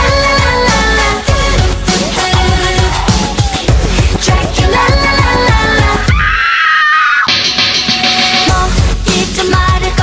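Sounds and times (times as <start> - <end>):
filtered electro-pop music: 0.0 - 10.0.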